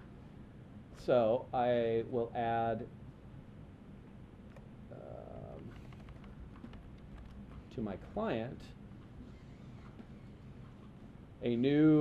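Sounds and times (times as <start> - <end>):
computer keyboard clicks: 5.8 - 7.4.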